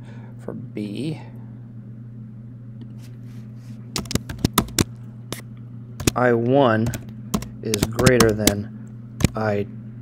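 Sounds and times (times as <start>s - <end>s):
steady low hum: 0.0s - 10.0s
keyboard keys clicking: 4.0s - 4.9s, 6.0s - 6.2s, 6.8s - 8.6s, 9.2s - 9.4s.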